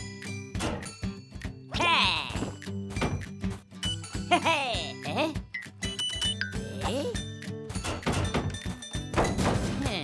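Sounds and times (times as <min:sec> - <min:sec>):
playful background music: 0:00.0 - 0:10.0.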